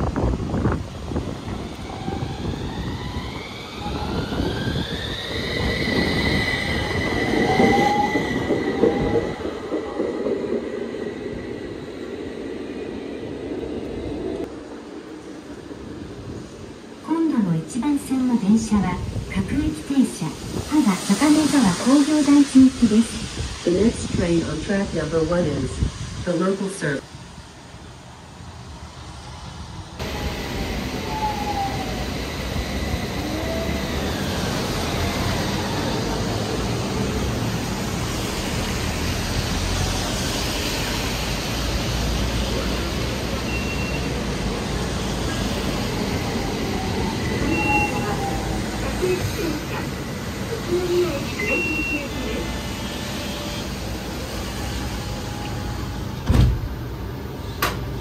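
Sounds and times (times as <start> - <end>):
tram rumble and hiss: 0.0 - 58.0
traffic on wet road: 34.4 - 55.9
short high beeps: 51.4 - 52.3.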